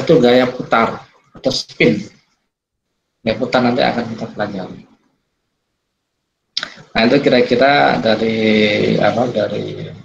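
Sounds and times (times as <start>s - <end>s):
man speaking: 0.0s - 2.4s, 3.2s - 5.0s, 6.6s - 10.0s.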